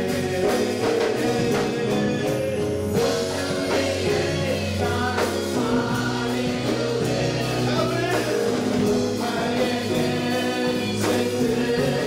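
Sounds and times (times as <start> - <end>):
band with keyboard: 0.0 - 12.0
man singing into microphone: 0.0 - 12.0
many voices singing along: 0.0 - 12.0.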